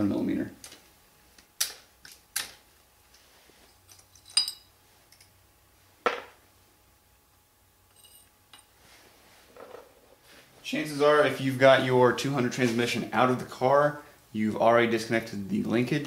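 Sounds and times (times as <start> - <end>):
metallic clinks of tools: 3.9 - 5.3.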